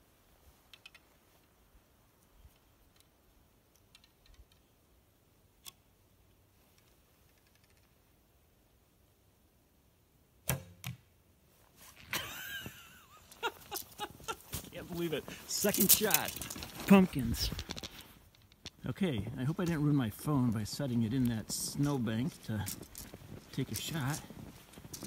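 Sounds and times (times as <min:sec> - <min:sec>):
arrow hitting pumpkin: 0:10.4 - 0:11.0
handling rustles: 0:11.6 - 0:18.8.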